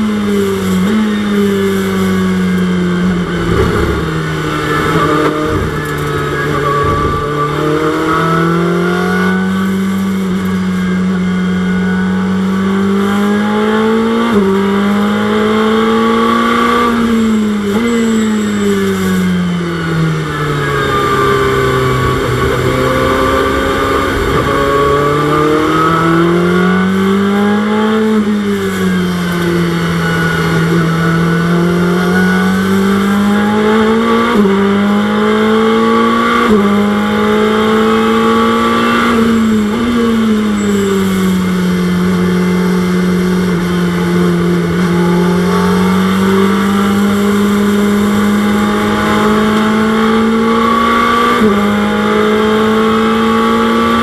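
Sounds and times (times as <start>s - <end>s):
racing car engine revving: 0.0s - 54.0s
quick gear upshifts: 1.8s - 8.6s.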